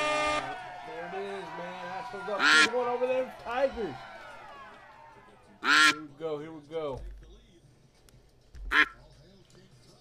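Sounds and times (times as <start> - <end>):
cartoon duck quacking: 5.6 - 6.0, 8.7 - 9.0.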